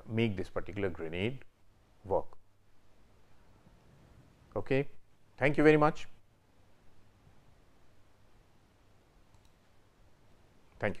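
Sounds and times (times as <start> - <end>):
faint click: 9.3 - 9.6.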